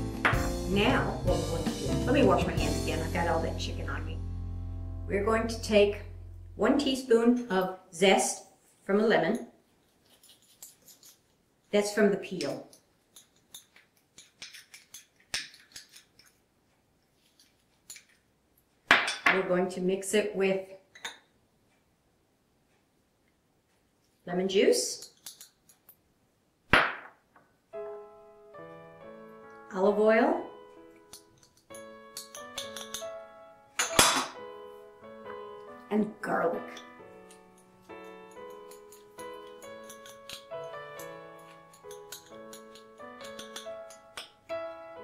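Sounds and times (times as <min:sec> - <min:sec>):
light keyboard music: 0:00.0 - 0:07.4, 0:27.7 - 0:45.0
glass bowl clinking on tile: 0:31.1 - 0:33.1, 0:33.8 - 0:34.4, 0:38.5 - 0:44.4.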